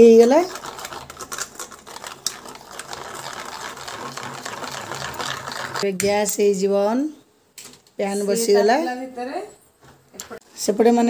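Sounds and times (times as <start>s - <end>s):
whisk rattling in steel bowl: 0.0s - 5.9s.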